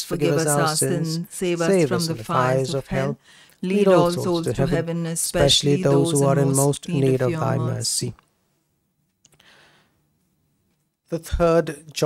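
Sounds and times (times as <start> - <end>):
person speaking: 0.0 - 8.2.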